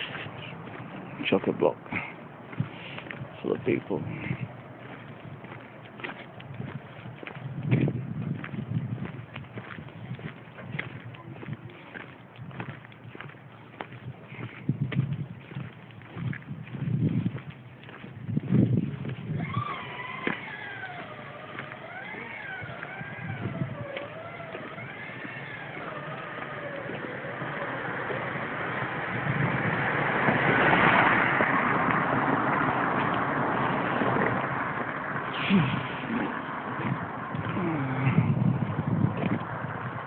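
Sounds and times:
car passing: 0:00.0 - 0:14.5, 0:15.2 - 0:40.0.

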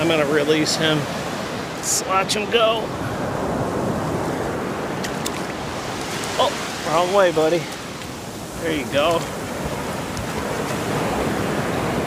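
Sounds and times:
surf washing over sand: 0:00.0 - 0:12.0.

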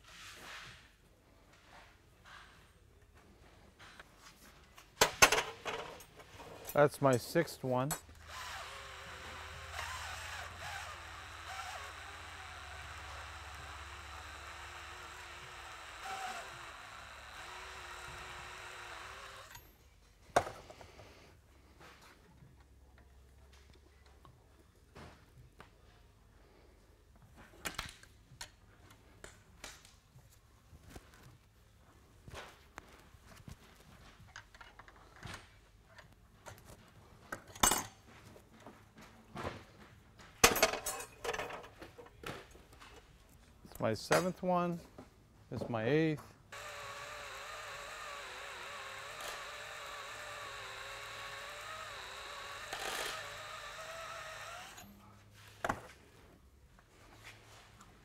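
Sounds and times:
drill grinding whine: 0:08.1 - 0:19.7, 0:46.5 - 0:54.9.

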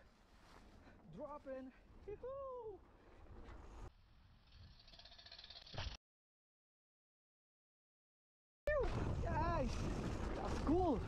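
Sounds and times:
bike rolling on dirt trail: 0:03.7 - 0:06.0.

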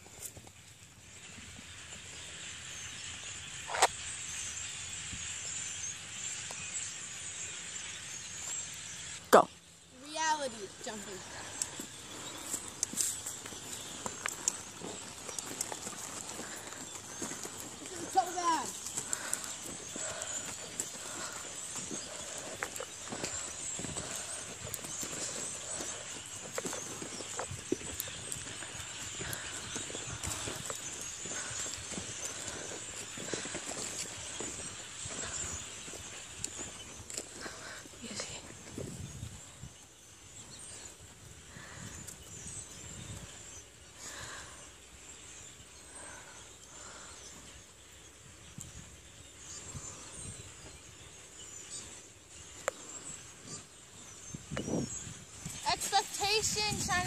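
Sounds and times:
horse hooves on dirt: 0:10.2 - 0:40.0, 0:52.4 - 0:57.0.

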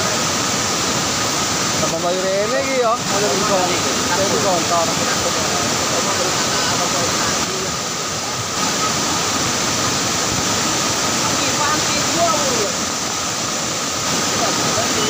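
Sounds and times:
flooded river rushing: 0:00.0 - 0:15.0.

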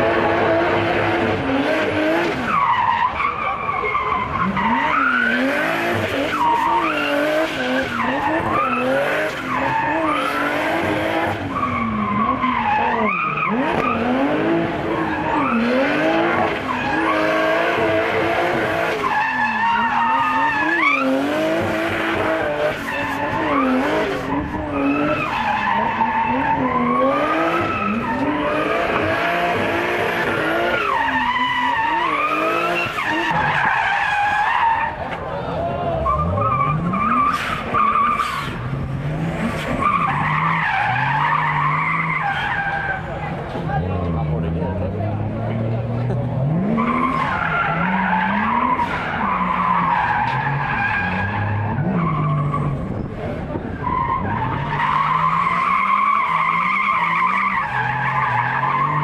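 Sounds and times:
car engine revving: 0:00.0 - 0:35.2, 0:35.9 - 0:59.0
tyres squealing on tarmac: 0:02.0 - 0:38.8, 0:39.4 - 0:44.5, 0:46.4 - 0:59.0.

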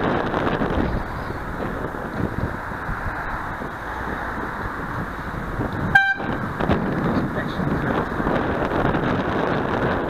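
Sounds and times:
road noise: 0:00.0 - 0:10.0
wind rushing: 0:00.0 - 0:10.0
horn toot: 0:05.9 - 0:06.4.

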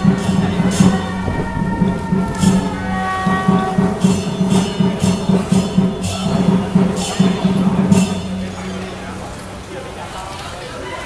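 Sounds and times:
quick drum beats: 0:00.0 - 0:09.2
cymbal crashes: 0:00.0 - 0:09.6
held pitched note: 0:00.0 - 0:09.6.

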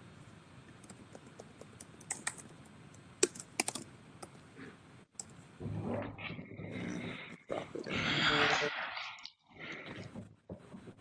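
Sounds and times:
soft low noisy sound: 0:00.0 - 0:11.0
computer keyboard typing: 0:00.8 - 0:04.4.

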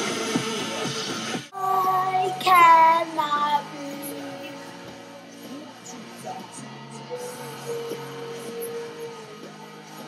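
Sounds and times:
young girl singing: 0:01.5 - 0:04.8.

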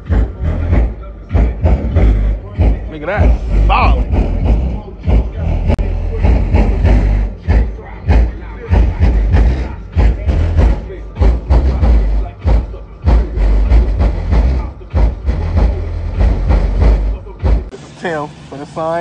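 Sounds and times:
subwoofer bass knocking: 0:00.0 - 0:17.7
bass-heavy rap music from car stereo: 0:00.0 - 0:19.0
rap vocals: 0:00.0 - 0:19.0.

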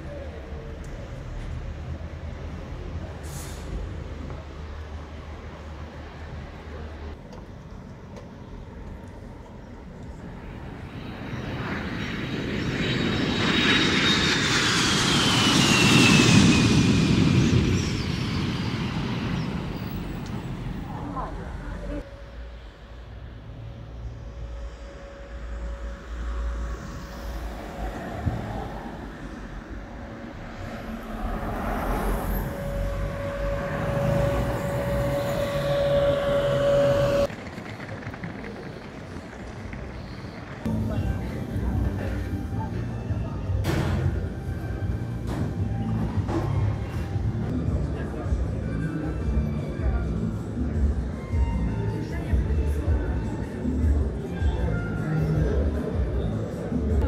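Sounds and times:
jet aircraft passing: 0:00.1 - 0:51.4.

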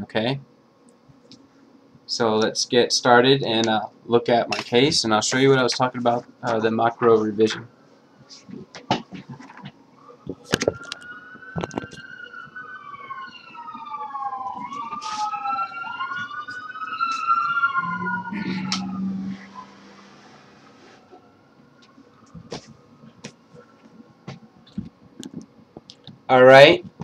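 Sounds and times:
sirens wailing: 0:09.4 - 0:25.2.

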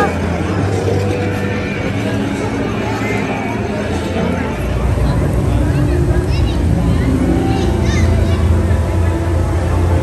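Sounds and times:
low hum: 0:00.0 - 0:10.0
murmur of voices: 0:00.0 - 0:10.0.

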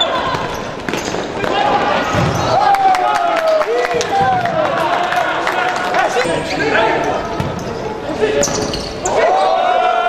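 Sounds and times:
shoe squeaks on court floor: 0:07.1 - 0:09.1.

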